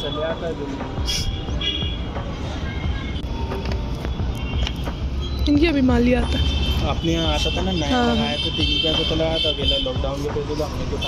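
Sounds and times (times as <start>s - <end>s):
distant road traffic hum: 0.0s - 11.0s.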